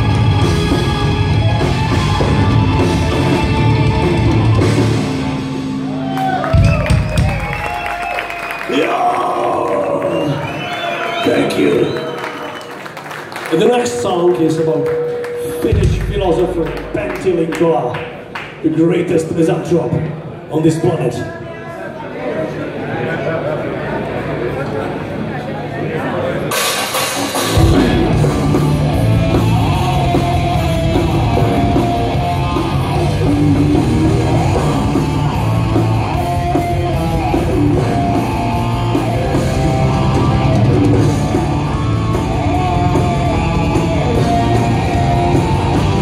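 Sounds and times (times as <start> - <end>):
black metal band playing live: 0.0 - 7.6, 26.5 - 46.0
crowd whistling and cheering: 5.8 - 15.9
audience chatter: 10.2 - 46.0.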